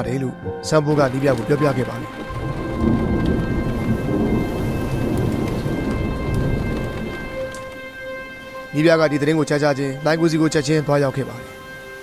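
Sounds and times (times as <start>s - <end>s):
background music drone: 0.0s - 12.0s
thunder rumbling: 0.9s - 10.0s
steady rain: 0.9s - 12.0s.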